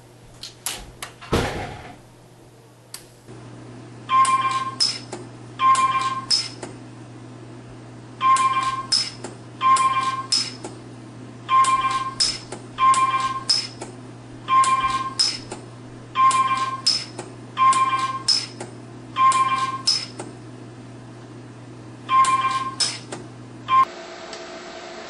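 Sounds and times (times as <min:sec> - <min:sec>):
electrical hum: 0:00.0 - 0:25.0
weld click with high beep: 0:04.1 - 0:06.7, 0:08.2 - 0:10.7, 0:11.5 - 0:13.9, 0:14.5 - 0:15.5, 0:16.2 - 0:18.6, 0:19.2 - 0:20.2, 0:22.1 - 0:23.1.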